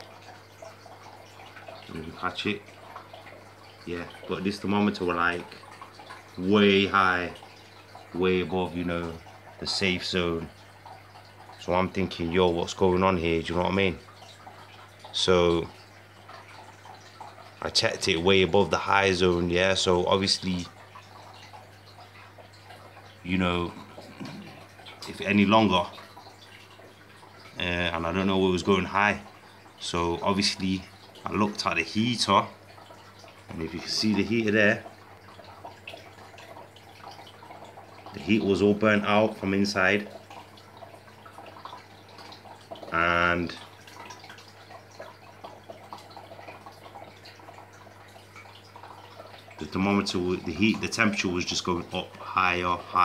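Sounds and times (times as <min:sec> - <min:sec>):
aquarium water trickling: 0:00.0 - 0:53.0
droplets ticking: 0:00.0 - 0:53.0.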